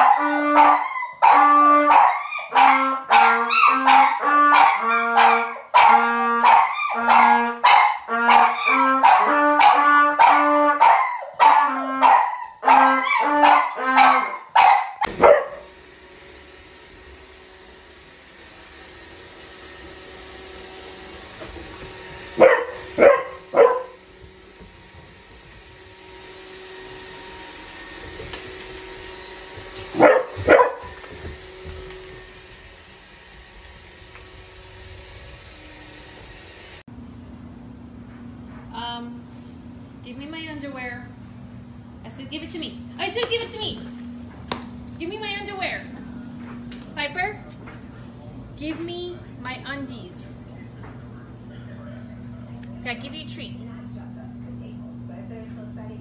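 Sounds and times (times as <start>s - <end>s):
trumpet short held notes: 0.0s - 14.6s
dog barking: 0.0s - 15.7s, 22.4s - 24.0s, 30.0s - 31.0s
dog howling: 0.0s - 15.7s
robot vacuum humming: 14.0s - 36.8s.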